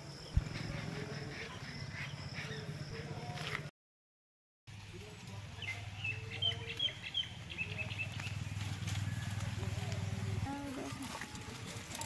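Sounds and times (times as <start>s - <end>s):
birds chirping: 0.0s - 3.7s, 5.0s - 12.0s.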